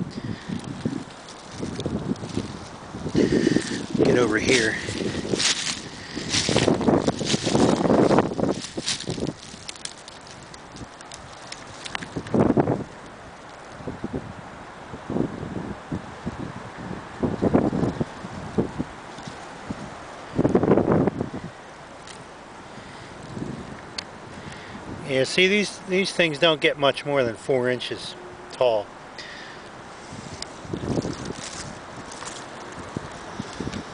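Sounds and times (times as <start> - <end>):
brush rustling against camera: 0.0 - 13.9, 17.3 - 22.4, 29.8 - 33.9
wind gusting on microphone: 0.0 - 33.9.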